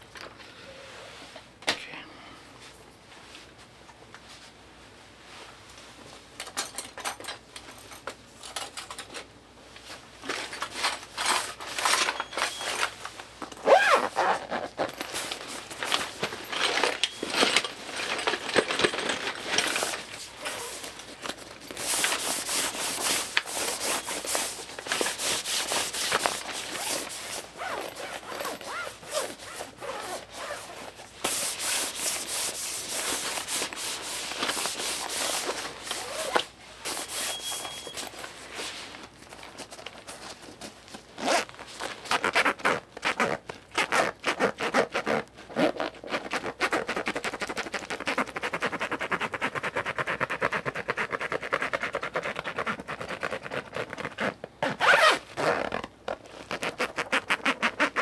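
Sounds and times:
zipper opening and closing: 13.5 - 33.7, 34.4 - 38.2, 41.2 - 58.0
fabric rubbing and scratching: 13.6 - 58.0.

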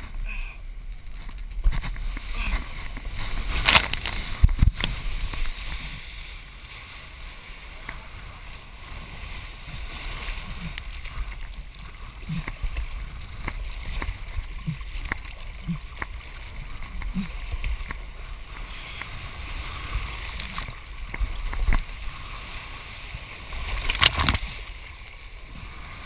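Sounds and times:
water rushing and splashing: 0.0 - 26.0
wind buffeting microphone: 1.0 - 6.0.

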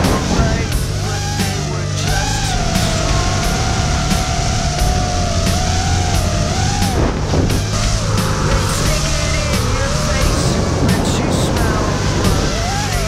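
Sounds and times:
music with steady beat: 0.0 - 13.0
quadcopter motors whining: 0.0 - 13.0.

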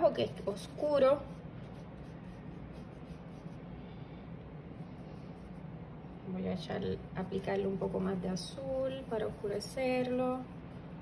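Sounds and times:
paintbrush rubbing on paper: 0.0 - 3.8, 4.7 - 6.2, 7.0 - 11.0.

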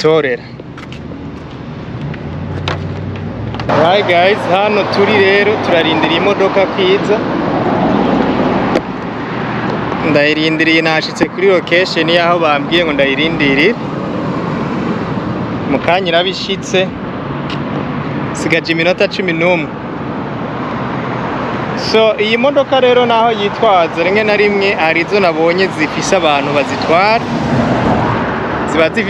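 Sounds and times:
road noise rush: 0.0 - 29.0
car engine hum: 0.6 - 10.8
man's voice: 3.7 - 7.2, 28.7 - 29.0.

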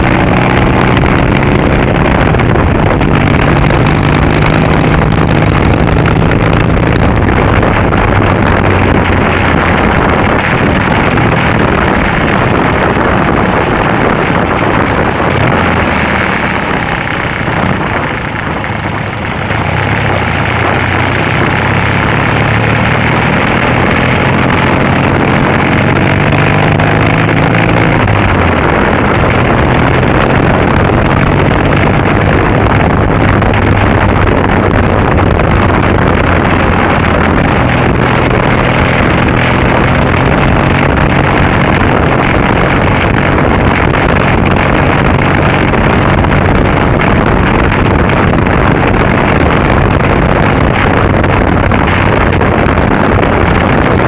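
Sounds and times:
heavy wind noise: 0.0 - 54.0
motorcycle engine: 0.0 - 54.0.

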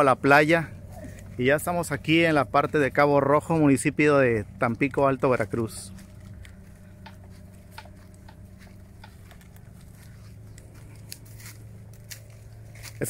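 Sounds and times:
low steady hum: 0.0 - 13.0
footsteps on sandy dirt path: 0.7 - 13.0.

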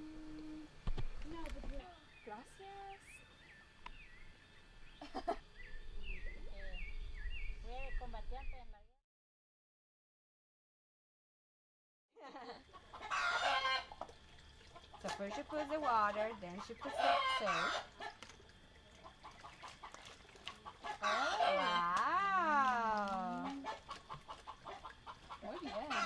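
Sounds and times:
chickens calling: 12.6 - 26.0.

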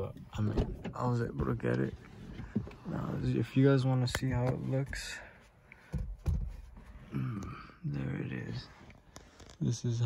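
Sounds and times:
soft low thumps: 4.3 - 7.6.

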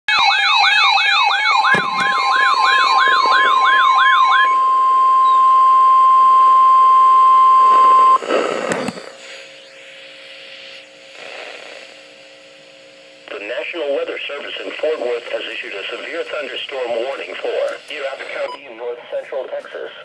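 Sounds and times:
warbling alarm siren: 0.1 - 8.2
steady warning tone: 0.1 - 10.9
pulsed beeps: 1.5 - 9.0, 18.2 - 18.7.

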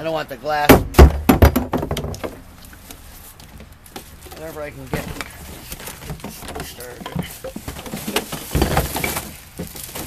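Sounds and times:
plastic recycling bin knocking: 0.7 - 2.4, 6.0 - 10.0
plastic bottles clattering: 0.8 - 2.8, 3.4 - 10.0.

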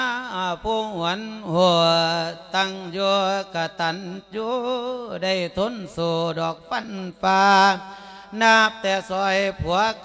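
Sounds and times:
man chanting sermon melody: 0.0 - 10.0.

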